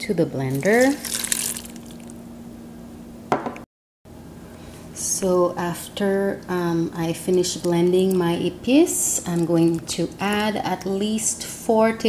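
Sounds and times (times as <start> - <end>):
water pouring into blender jar: 0.6 - 2.1
short knock: 3.3 - 3.6.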